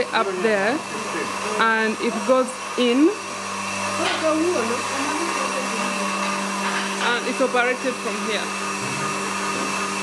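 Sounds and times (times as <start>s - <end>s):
vacuum pump motor humming: 0.0s - 10.0s.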